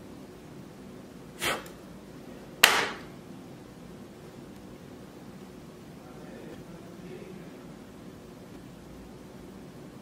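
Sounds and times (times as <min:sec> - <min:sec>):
sharp puff of breath: 0:01.4 - 0:01.8.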